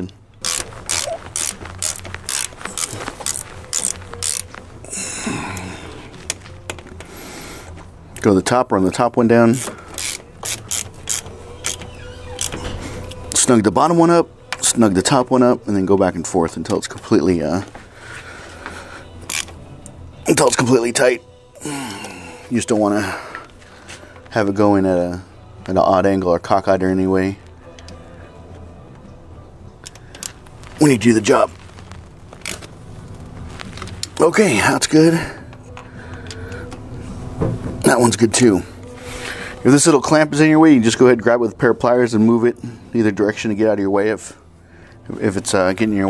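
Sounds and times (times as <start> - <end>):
ratchet wrench clicking: 0.4 - 4.5, 9.6 - 12.6, 19.3 - 19.5.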